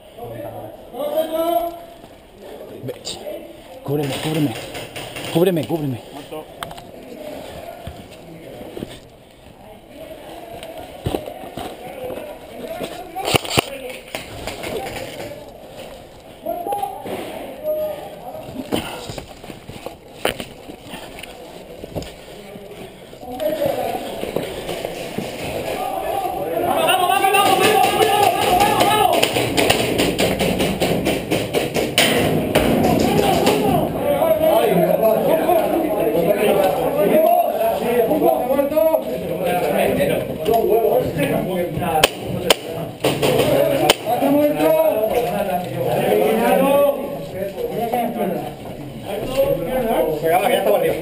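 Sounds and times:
faint voices: 0:00.0 - 0:51.0
footsteps over rubble: 0:18.4 - 0:25.8.

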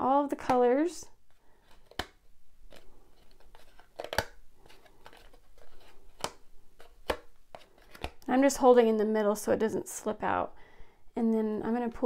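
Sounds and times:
thread rustling on cardboard: 0:01.2 - 0:08.2.

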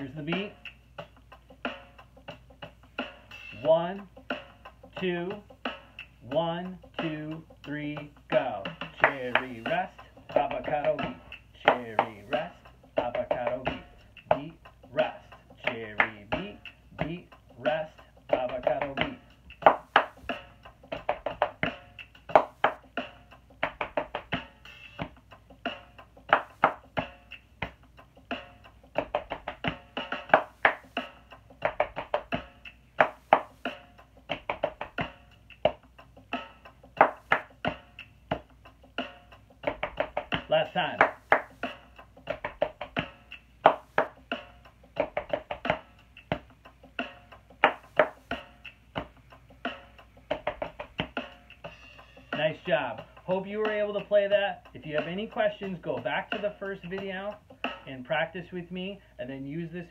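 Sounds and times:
hip hop beat: 0:00.0 - 0:59.9
person chanting: 0:08.4 - 0:19.2
hand claps and body pats: 0:08.9 - 0:09.7, 0:10.8 - 0:12.5, 0:16.0 - 0:16.4, 0:18.4 - 0:20.4, 0:21.0 - 0:22.9, 0:23.6 - 0:24.4, 0:26.3 - 0:27.8, 0:29.0 - 0:31.0, 0:31.6 - 0:33.7, 0:34.3 - 0:35.9, 0:36.9 - 0:38.5, 0:39.7 - 0:49.4, 0:50.0 - 0:51.2.

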